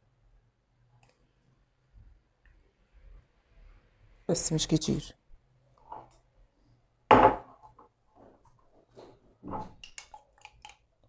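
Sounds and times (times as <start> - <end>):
kitchen container knock: 7.1 - 7.5.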